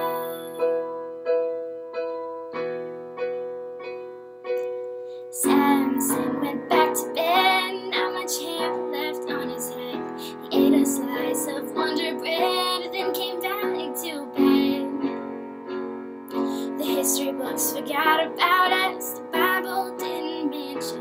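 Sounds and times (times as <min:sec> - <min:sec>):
woman singing a ballad: 0:00.0 - 0:01.0, 0:05.3 - 0:15.4, 0:16.3 - 0:21.0
piano chords: 0:00.0 - 0:21.0.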